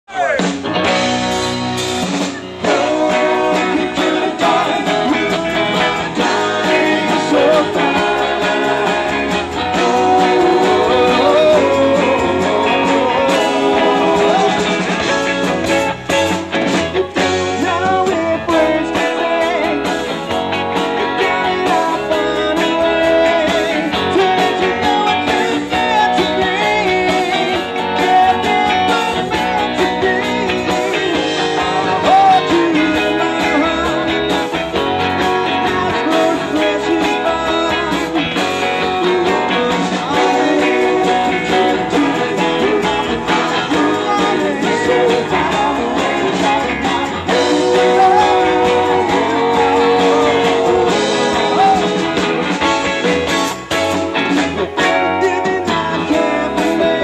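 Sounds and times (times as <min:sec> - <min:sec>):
live surf rock band: 0:00.1 - 0:57.0.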